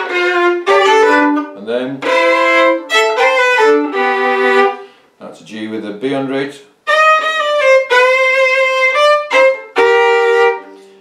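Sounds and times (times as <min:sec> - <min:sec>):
fiddle playing double stops: 0:00.0 - 0:05.0, 0:06.9 - 0:11.0.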